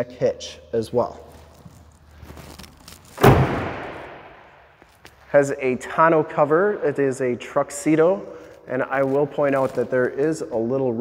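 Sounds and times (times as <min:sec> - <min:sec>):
tailgate slamming shut: 0:03.2 - 0:04.2.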